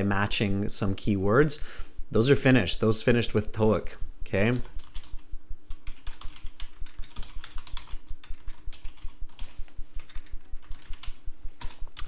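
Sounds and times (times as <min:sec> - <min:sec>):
typing on computer keyboard: 0:04.4 - 0:12.0.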